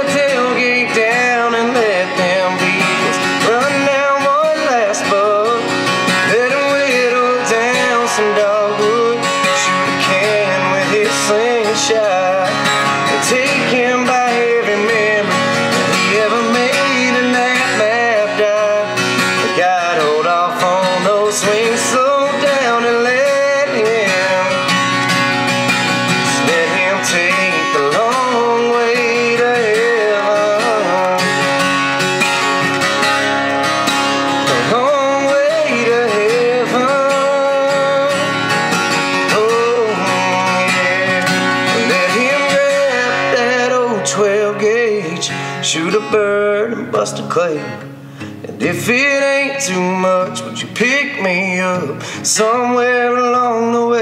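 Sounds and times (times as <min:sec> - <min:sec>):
acoustic guitar strumming: 0:00.0 - 0:54.0
person singing: 0:00.0 - 0:54.0.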